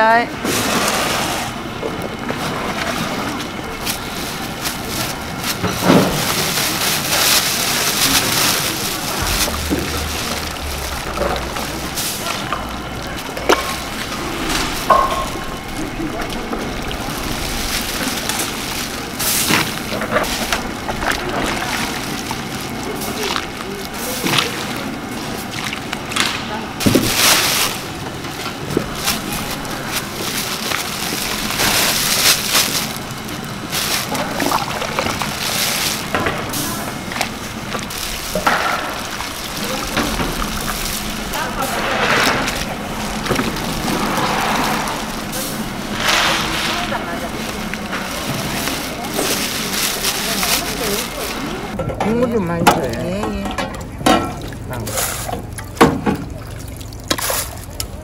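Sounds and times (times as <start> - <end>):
liquid sloshing: 0.4 - 58.0
plastic bags crinkling: 1.4 - 51.8.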